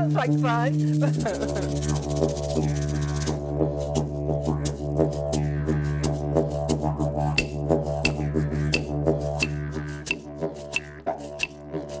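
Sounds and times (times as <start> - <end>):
didgeridoo drone: 0.0 - 12.0
sharp clicks: 7.4 - 8.2.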